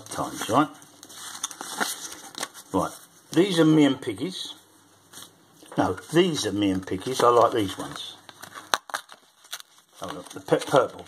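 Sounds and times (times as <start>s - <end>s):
paper cards rustling and crinkling: 0.0s - 3.7s, 5.1s - 11.0s.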